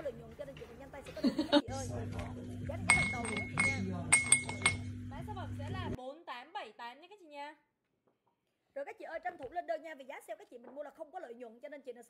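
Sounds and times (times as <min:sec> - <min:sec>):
steady low hum: 0:01.6 - 0:06.0
glass tumbler clinking: 0:01.7 - 0:06.0.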